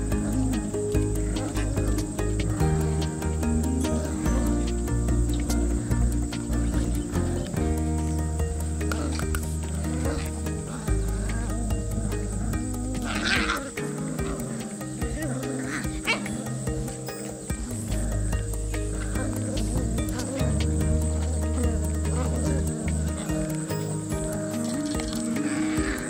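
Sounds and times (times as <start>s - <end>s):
background music chords and bass: 0.0s - 26.0s
puppies growling in play: 0.0s - 26.0s
puppy high cry: 15.1s - 16.6s.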